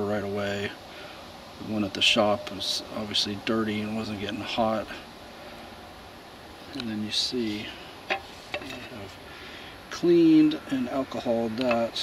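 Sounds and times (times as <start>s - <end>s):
faint steady hiss: 0.0s - 12.0s
metal cover clicking on wooden bench: 8.1s - 8.8s.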